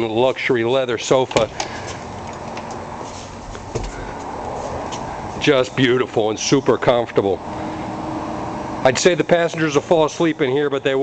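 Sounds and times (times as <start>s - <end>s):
room noise: 0.0s - 11.0s.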